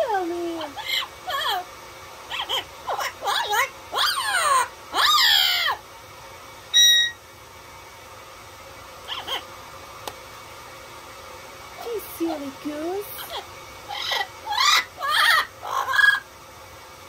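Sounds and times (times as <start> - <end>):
parrot squawking calls: 0.6 - 1.7, 2.3 - 5.8, 6.8 - 7.2, 9.0 - 9.5, 13.2 - 16.3
parrot whistle: 2.3 - 5.8, 6.7 - 7.2, 9.1 - 9.4, 13.3 - 16.3.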